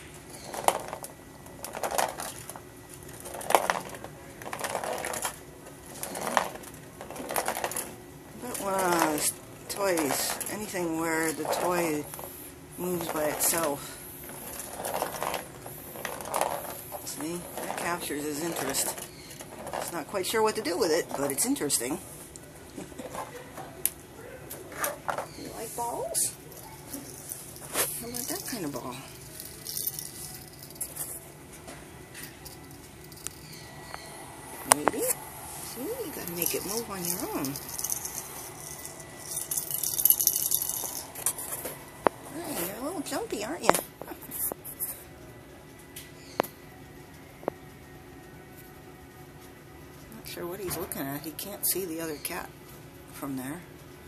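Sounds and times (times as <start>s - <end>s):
plastic ball rolling on concrete: 0.0s - 44.1s
plastic ball rattling on track: 0.4s - 13.8s, 36.2s - 41.8s.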